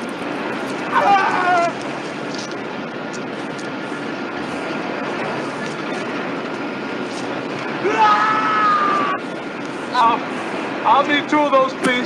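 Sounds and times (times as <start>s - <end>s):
factory machinery drone: 0.0s - 12.0s.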